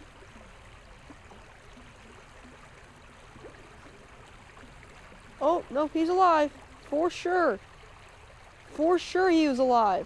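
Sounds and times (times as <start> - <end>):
creek water rushing over rocks: 0.0 - 10.0.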